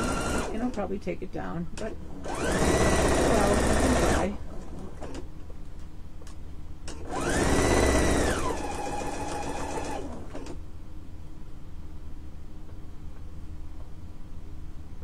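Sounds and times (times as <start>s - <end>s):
electric sewing machine stitching: 0.0s - 0.8s, 1.8s - 5.2s, 6.9s - 10.6s.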